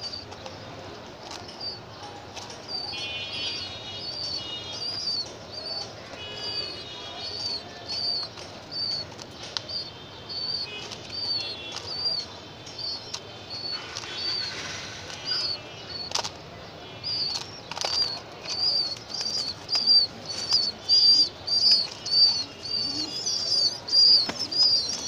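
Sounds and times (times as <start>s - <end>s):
bird chirping: 0.0s - 25.0s
pigeon beak pecking grain: 0.1s - 16.4s, 17.0s - 25.0s.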